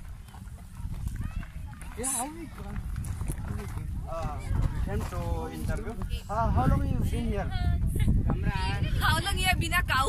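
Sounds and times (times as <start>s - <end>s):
wind rumble on microphone: 0.0s - 10.0s
several people talking: 0.2s - 10.0s.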